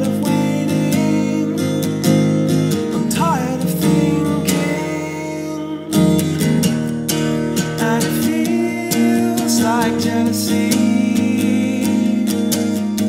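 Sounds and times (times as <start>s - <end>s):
man singing: 0.0s - 2.2s, 2.8s - 6.6s, 7.6s - 12.8s
acoustic guitar strumming: 0.0s - 13.0s.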